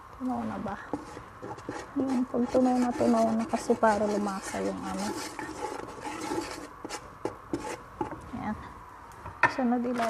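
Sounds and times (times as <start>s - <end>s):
wooden spatula scraping a pot: 0.8s - 8.2s.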